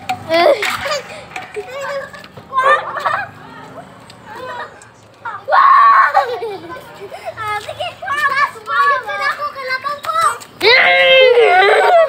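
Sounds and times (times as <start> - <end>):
children chattering and calling: 0.0 - 12.0
loud shout: 5.3 - 6.3, 9.9 - 12.0.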